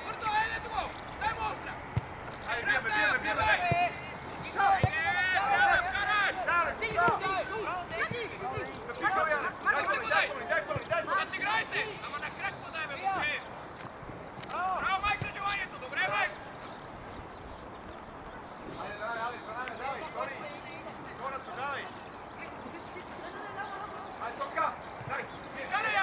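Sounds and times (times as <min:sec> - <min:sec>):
players shouting calls: 0:00.0 - 0:26.0.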